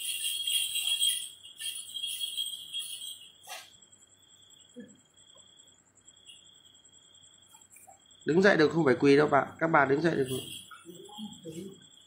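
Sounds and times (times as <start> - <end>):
small jingle bells shaken: 0.0 - 4.8, 7.4 - 8.1, 9.6 - 12.0.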